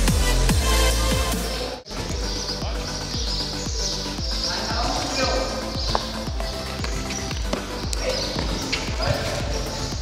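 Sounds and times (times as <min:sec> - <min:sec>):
background music with drum beat: 0:00.0 - 0:10.0.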